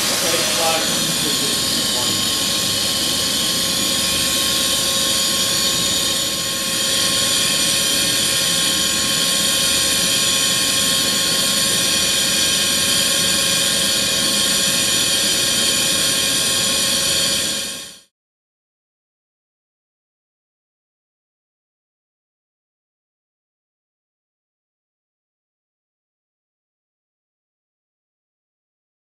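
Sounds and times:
spray gun hissing and whining: 0.0 - 18.0.

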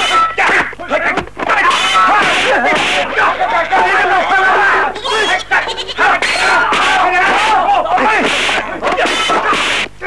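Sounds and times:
men shouting: 0.1 - 9.6
goats bleating: 1.7 - 6.8.

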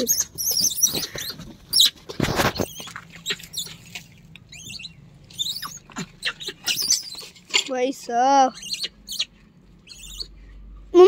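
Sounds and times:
monkeys squeaking: 0.0 - 3.8, 4.5 - 7.4, 8.5 - 10.3.

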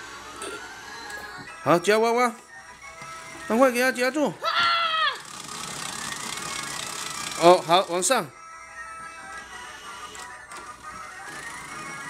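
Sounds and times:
toy electronic tune: 5.2 - 12.0.

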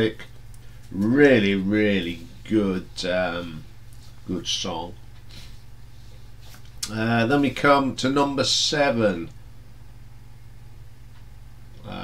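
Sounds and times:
room tone hum: 0.0 - 12.0.

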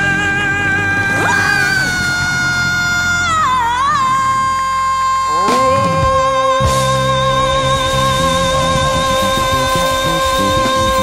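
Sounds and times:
high belted vocal notes: 0.0 - 11.0
rock and roll band playing: 5.3 - 11.0.

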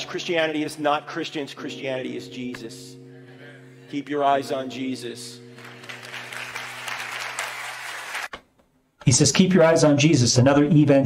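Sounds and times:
audience applauding: 5.5 - 8.4.

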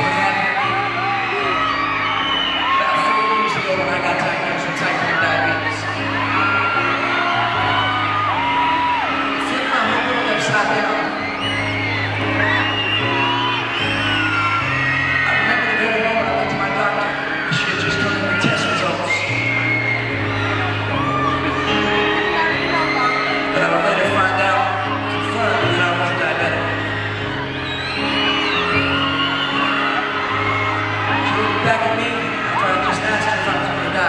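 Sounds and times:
audience screaming and whooping: 0.0 - 34.0
grand piano chords: 0.0 - 34.0.

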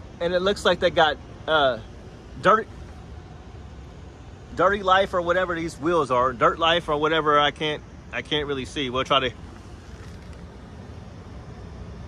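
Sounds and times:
low rumble of distant traffic: 0.0 - 12.0.

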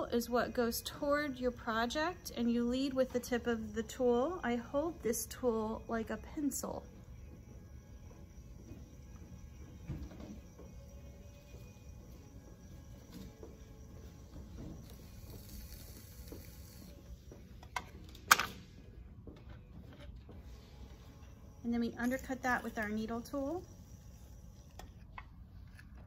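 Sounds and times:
potter's wheel humming: 0.0 - 26.0.

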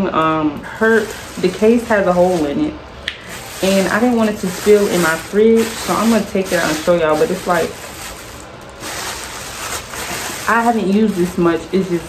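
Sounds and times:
plastic bag crinkling: 0.6 - 12.0.

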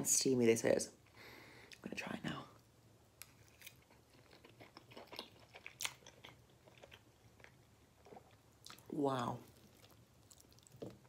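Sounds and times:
person chewing food: 3.2 - 11.0.

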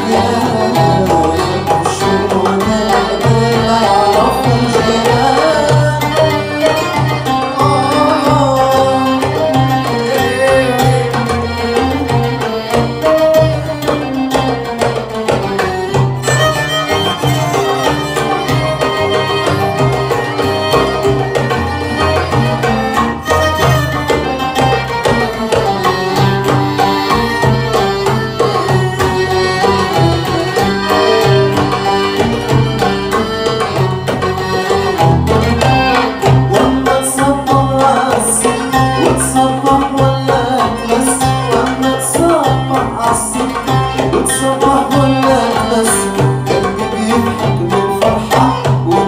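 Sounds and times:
accordion: 0.0 - 49.0
contrabass: 0.0 - 49.0
hand drum rhythm: 0.0 - 49.0
oud: 0.0 - 49.0
violin melody: 0.0 - 49.0.

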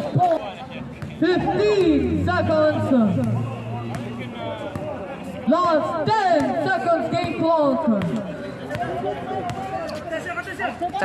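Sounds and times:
voices talking: 0.0 - 10.8.

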